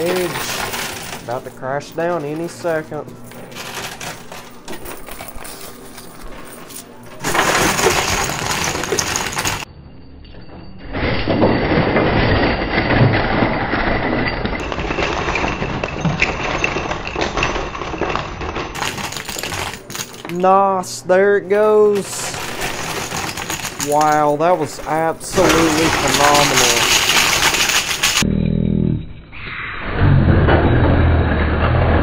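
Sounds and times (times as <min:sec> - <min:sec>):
coins and chips clattering: 0:00.0 - 0:09.7, 0:10.8 - 0:28.2.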